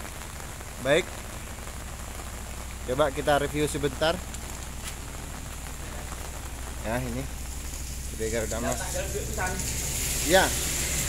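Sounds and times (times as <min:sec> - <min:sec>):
steady rain: 0:00.0 - 0:11.0.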